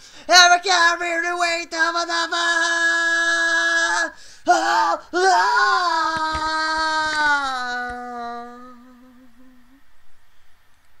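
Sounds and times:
faint room noise: 0:00.0 - 0:11.0
man humming low note: 0:07.5 - 0:10.0.

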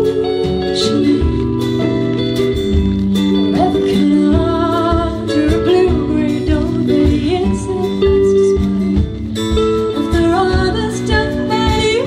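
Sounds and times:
acoustic guitar: 0:00.0 - 0:12.0
drum kit beat: 0:00.0 - 0:12.0
electric guitars: 0:00.0 - 0:12.0.

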